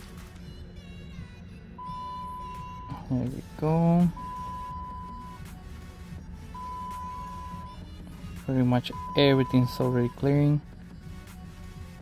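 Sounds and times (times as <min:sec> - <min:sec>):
background music: 0:00.0 - 0:12.0
high-pitched electronic beep: 0:01.8 - 0:03.1, 0:04.0 - 0:05.4, 0:06.6 - 0:07.8, 0:08.8 - 0:10.3.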